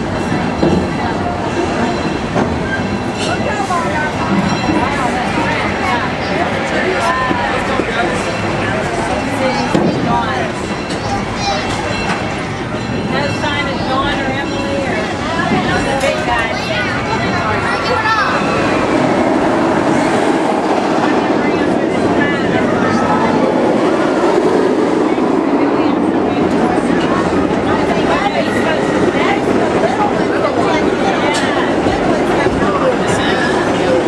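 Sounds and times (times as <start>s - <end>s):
people talking: 0.0s - 34.0s
steam train rolling along track: 0.0s - 34.0s.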